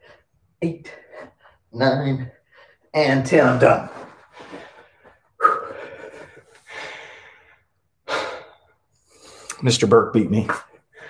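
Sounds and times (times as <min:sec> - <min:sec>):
man breathing hard: 0:04.3 - 0:09.5.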